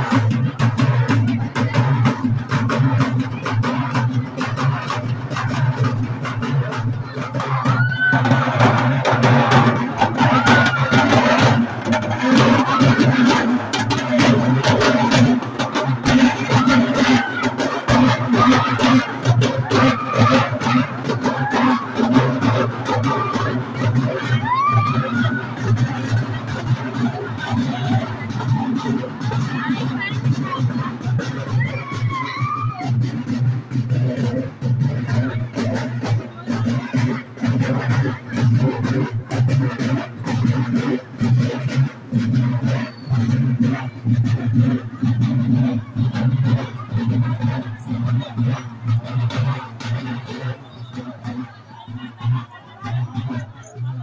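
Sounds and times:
crowd voices: 0.0s - 54.0s
drums beating fast: 0.0s - 54.0s
rising cries: 7.4s - 13.5s, 16.2s - 26.0s.

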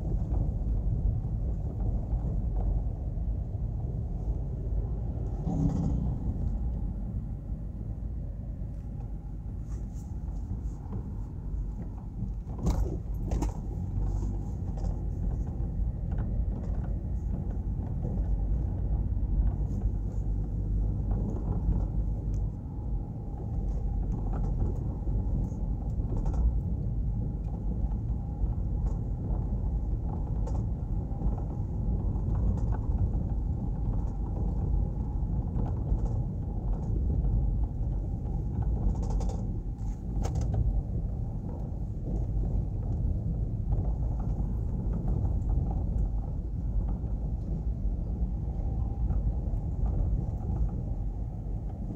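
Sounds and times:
car engine and tyre rumble: 0.0s - 51.9s.

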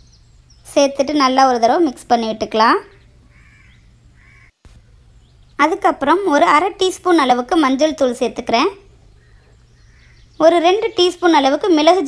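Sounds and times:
low background noise: 0.0s - 12.0s
faint crow caws: 3.2s - 5.0s, 9.2s - 10.4s.

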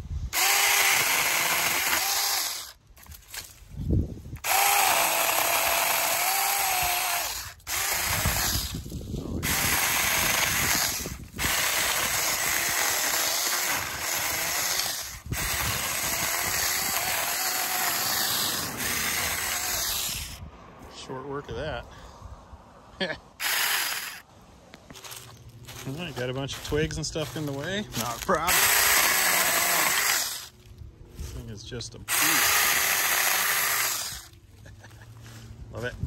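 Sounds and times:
electric chainsaw cutting wood: 0.3s - 3.5s, 4.4s - 20.4s, 23.4s - 24.2s, 27.3s - 30.6s, 32.0s - 34.4s.

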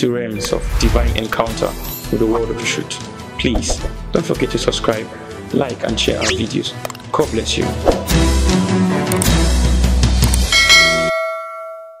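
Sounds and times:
backing music: 0.3s - 10.7s
bell chime: 10.5s - 12.0s.

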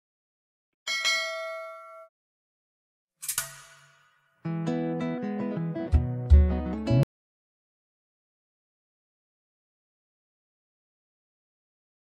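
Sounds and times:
bell-like ding: 0.9s - 2.1s.

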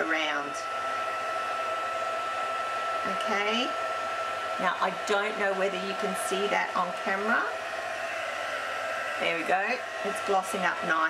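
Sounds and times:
heat tool blowing with whine: 0.0s - 11.0s.

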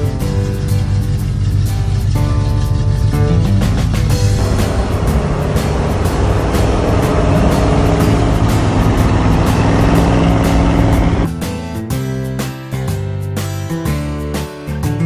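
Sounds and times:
guitar music: 2.1s - 12.4s
loud pickup truck engine: 3.9s - 11.3s.

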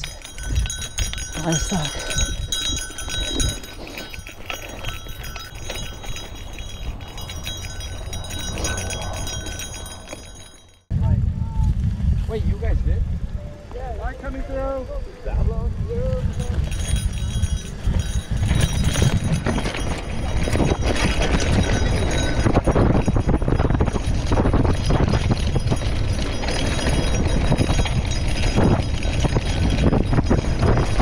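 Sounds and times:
bike rattling over dirt trail: 0.0s - 10.8s, 15.4s - 31.0s
wind rush on microphone: 0.0s - 31.0s.

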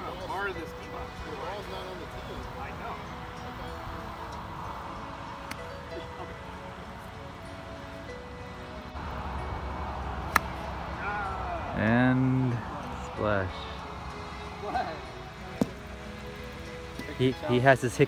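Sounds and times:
faint music: 0.0s - 18.0s
low voices: 9.1s - 16.0s.

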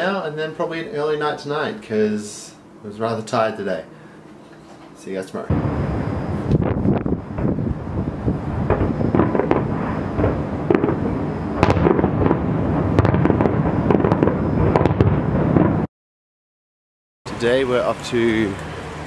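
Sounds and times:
fireworks bursting and crackling: 5.5s - 15.9s.

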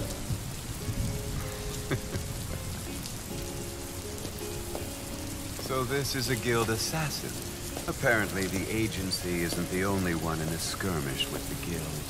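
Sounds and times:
steady rain: 0.0s - 12.0s.

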